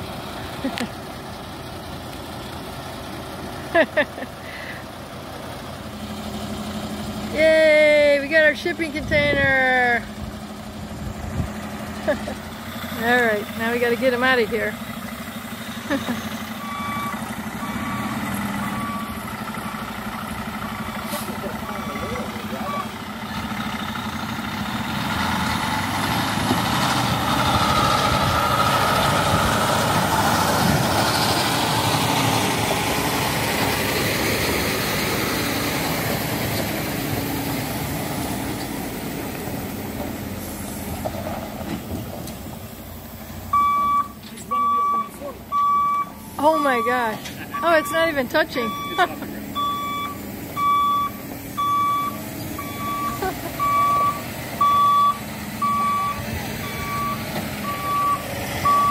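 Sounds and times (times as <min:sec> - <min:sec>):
truck engine under load: 0:00.0 - 0:58.9
truck backup beeper: 0:03.7 - 0:04.9, 0:11.6 - 0:26.1, 0:27.1 - 0:29.8, 0:43.4 - 0:58.9.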